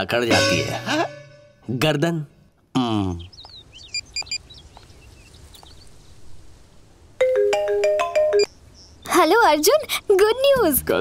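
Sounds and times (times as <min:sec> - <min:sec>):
faint bird chirps: 0:02.8 - 0:06.4, 0:08.4 - 0:10.8.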